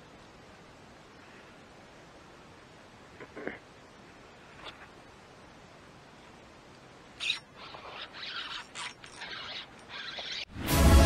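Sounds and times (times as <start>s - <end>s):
fishing reel winding: 7.2s - 10.4s
loud background music: 10.6s - 11.0s.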